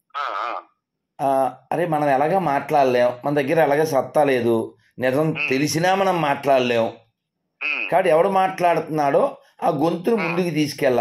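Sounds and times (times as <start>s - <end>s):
man talking: 1.2s - 7.0s, 7.9s - 11.0s.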